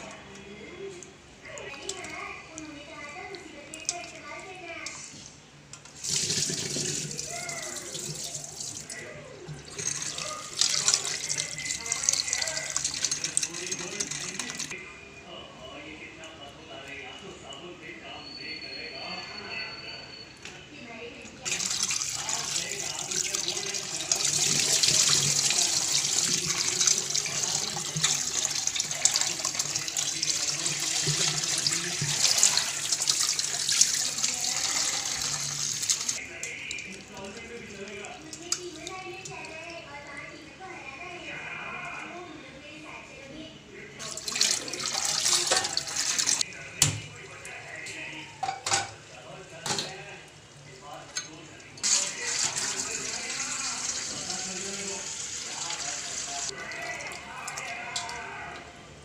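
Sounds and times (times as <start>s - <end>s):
tap water running into pot: 5.8s - 14.7s, 21.4s - 39.7s, 44.0s - 47.0s, 51.8s - 58.2s.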